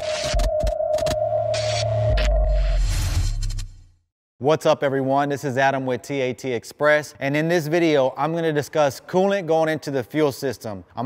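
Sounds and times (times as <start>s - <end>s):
held tone: 0.0s - 3.2s.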